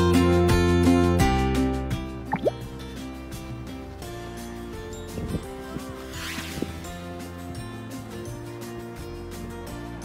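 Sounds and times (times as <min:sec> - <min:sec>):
short rising blip: 0:02.3 - 0:02.6.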